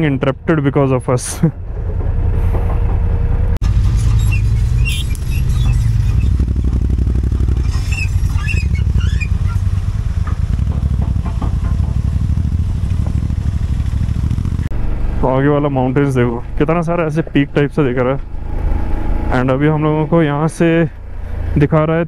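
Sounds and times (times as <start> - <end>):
motorcycle engine running: 3.6 - 20.1.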